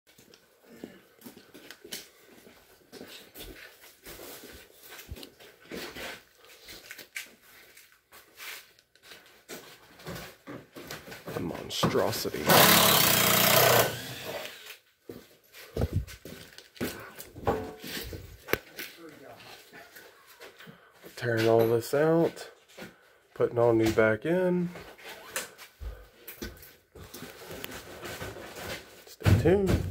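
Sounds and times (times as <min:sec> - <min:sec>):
footsteps on gritty concrete: 0:15.0 - 0:19.7.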